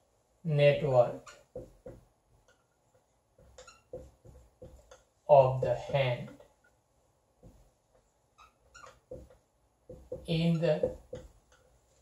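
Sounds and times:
marker squeaking on whiteboard: 0:01.2 - 0:05.2, 0:07.4 - 0:12.0.

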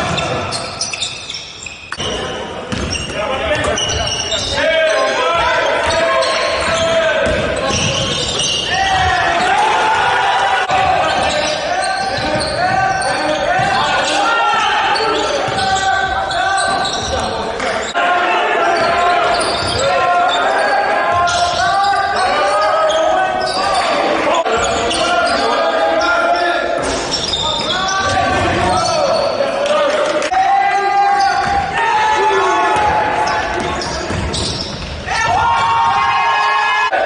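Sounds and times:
voices calling out in echoing hall: 0:00.0 - 0:37.0
basketball bouncing on hardwood: 0:02.7 - 0:03.1.

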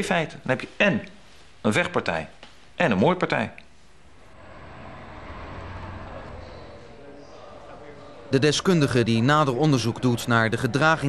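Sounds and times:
road traffic rumble: 0:04.1 - 0:08.3.

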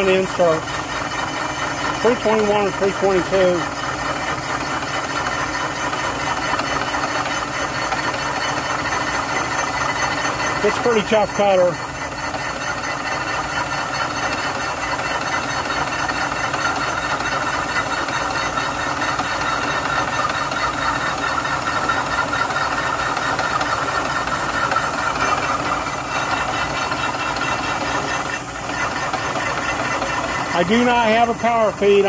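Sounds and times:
face mill cutting steel: 0:00.0 - 0:32.0
milling spindle running: 0:00.0 - 0:32.0.

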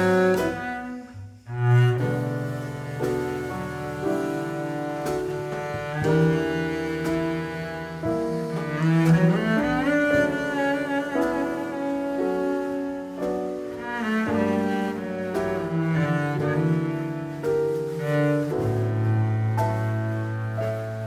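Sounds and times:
bowed double bass: 0:00.0 - 0:21.0
piano accompaniment: 0:00.0 - 0:21.0.

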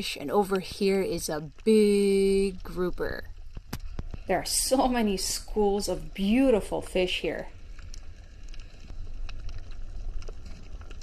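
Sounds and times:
low underwater rumble: 0:00.9 - 0:11.0
faint clicks: 0:07.5 - 0:11.0.

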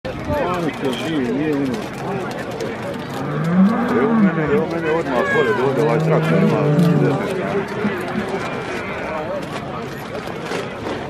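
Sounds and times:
crowd voices: 0:00.1 - 0:11.0
bull bellowing: 0:03.1 - 0:04.7, 0:05.4 - 0:08.8.

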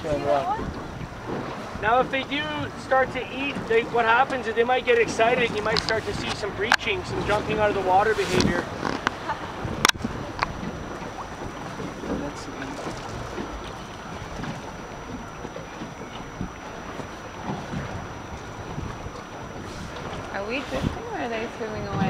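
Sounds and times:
choppy water around boat: 0:00.0 - 0:22.0
wind buffeting microphone: 0:00.0 - 0:22.0.

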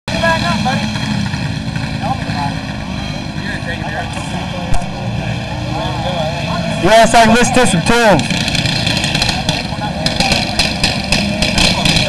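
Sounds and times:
low rumble of engines: 0:00.1 - 0:12.0
people's voices: 0:00.1 - 0:12.0.

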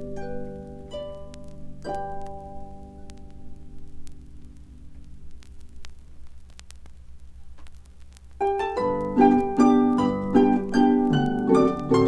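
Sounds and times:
steady low hum: 0:00.0 - 0:12.0
vinyl clicks and pops: 0:00.0 - 0:12.0
harp notes: 0:08.4 - 0:12.0.

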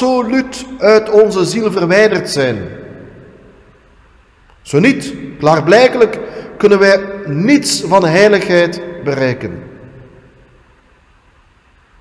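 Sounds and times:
echo of spoken word: 0:00.0 - 0:03.4, 0:04.6 - 0:10.2
steady hiss: 0:00.0 - 0:12.0.

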